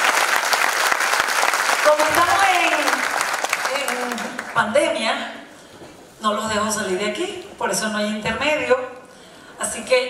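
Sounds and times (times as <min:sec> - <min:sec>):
audience applause: 0:00.0 - 0:04.6.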